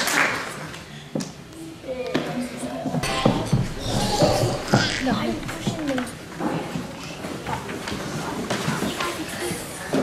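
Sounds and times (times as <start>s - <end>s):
murmur of small children: 0.0s - 10.0s.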